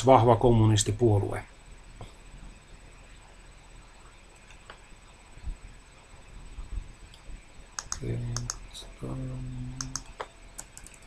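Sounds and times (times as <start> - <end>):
man speaking: 0.0 - 1.5, 8.0 - 10.0
computer keyboard tapping: 7.8 - 8.6, 9.8 - 11.0.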